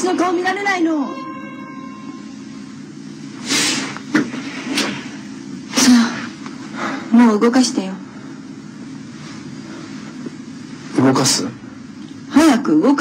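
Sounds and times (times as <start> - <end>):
low ambient hum: 0.0 - 13.0.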